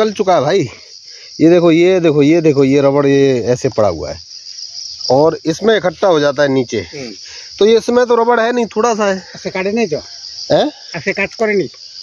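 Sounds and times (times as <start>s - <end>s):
man speaking: 0.0s - 0.8s, 1.4s - 4.2s, 5.1s - 11.8s
insects chorus: 0.0s - 12.0s.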